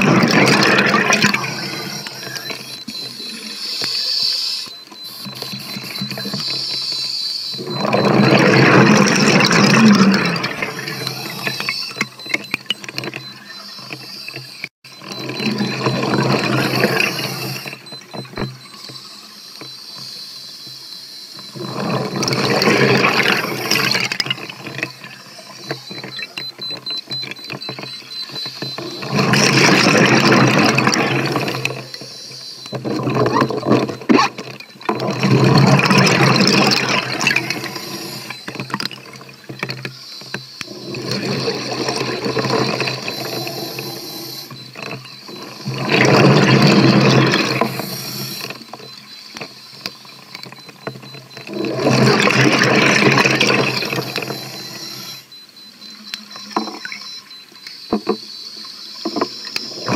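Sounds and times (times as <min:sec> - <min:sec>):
exhaled bubbles rushing: 0:00.0 - 0:02.8, 0:07.6 - 0:11.7, 0:28.8 - 0:31.8, 0:35.0 - 0:38.4, 0:40.7 - 0:44.7, 0:45.4 - 0:48.4, 0:51.5 - 0:55.1.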